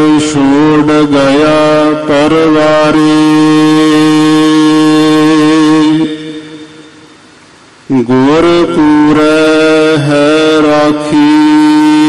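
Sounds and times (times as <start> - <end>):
person chanting: 0.0 - 7.1, 7.9 - 12.0.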